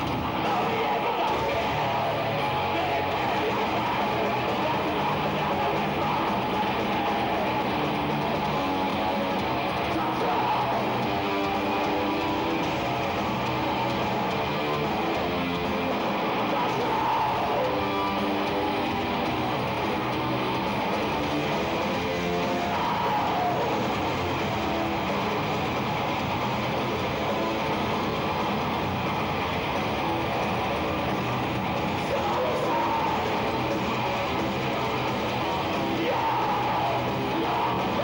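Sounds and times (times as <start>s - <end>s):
bass guitar: 0.0s - 38.0s
distorted electric guitars: 0.0s - 38.0s
drums: 0.0s - 38.0s
harsh screamed vocals: 0.0s - 38.0s.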